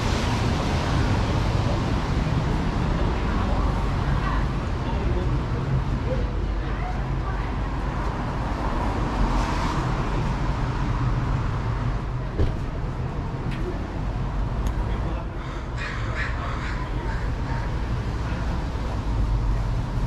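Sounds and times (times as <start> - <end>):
low rumble of traffic: 0.0 - 20.0
crow cawing: 15.4 - 17.4.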